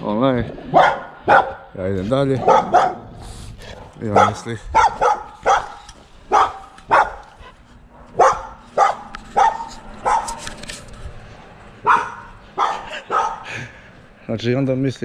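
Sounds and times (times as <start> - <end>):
dog barking: 0.7 - 1.7, 2.4 - 3.2, 3.8 - 10.4, 11.8 - 13.5.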